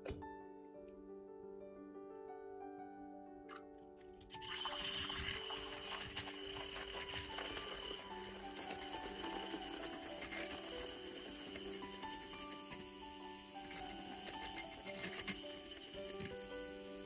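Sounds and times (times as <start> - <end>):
background music: 0.0 - 17.0
milk frother motor whirring: 4.3 - 17.0.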